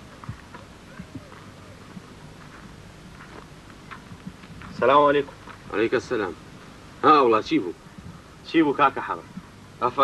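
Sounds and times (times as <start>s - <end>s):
footsteps on hard ground: 0.0s - 6.8s
low outdoor background: 0.0s - 10.0s.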